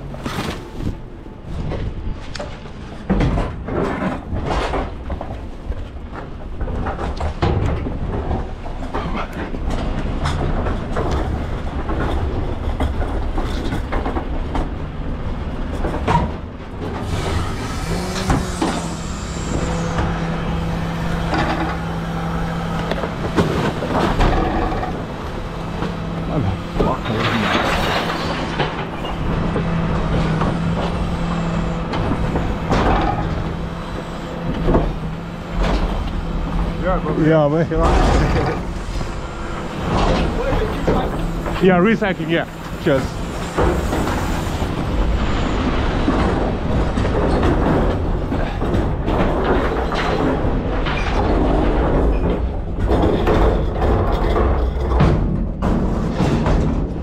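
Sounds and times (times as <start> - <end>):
refuse truck bin lift humming: 14.2 - 53.8.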